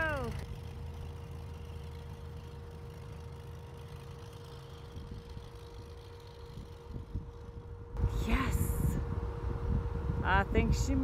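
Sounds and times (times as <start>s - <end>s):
distant tractor engine rumble: 0.0s - 11.0s.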